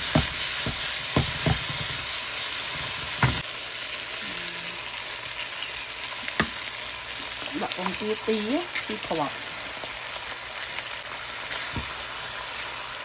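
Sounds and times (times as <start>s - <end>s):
wooden spatula knocking and scraping: 0.0s - 3.4s
oil sizzling in frying pan: 0.0s - 13.0s
egg cracking tap: 6.4s - 6.6s.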